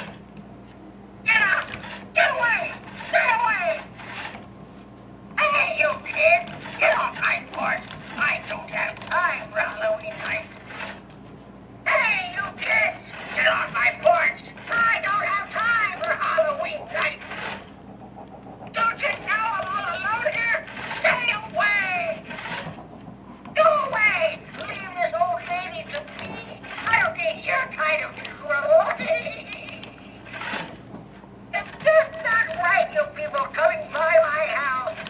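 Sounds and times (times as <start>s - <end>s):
tinny recorded old woman's voice: 5.4s - 10.5s, 11.9s - 17.3s, 18.7s - 22.4s, 23.6s - 30.3s, 31.6s - 35.0s.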